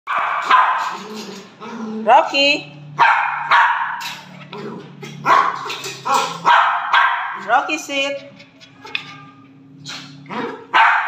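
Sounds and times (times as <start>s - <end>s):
dog barking: 0.1s - 1.0s, 3.0s - 4.2s, 5.2s - 7.4s, 9.9s - 11.0s.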